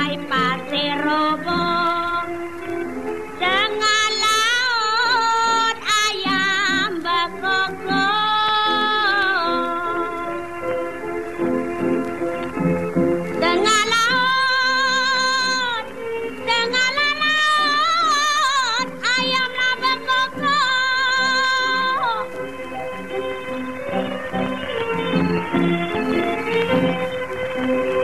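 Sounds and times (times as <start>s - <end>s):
woman singing: 0.0s - 2.8s, 3.4s - 10.6s, 13.4s - 22.4s
musical accompaniment: 0.0s - 28.0s.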